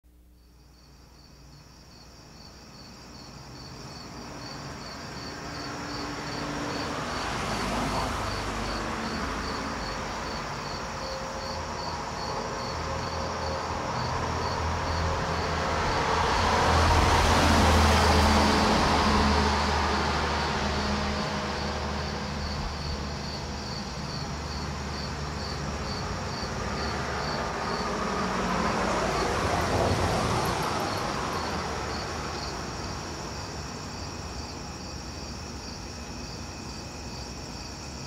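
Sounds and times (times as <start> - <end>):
crickets chirping: 0.3 - 38.0
vehicle passing: 4.4 - 34.2.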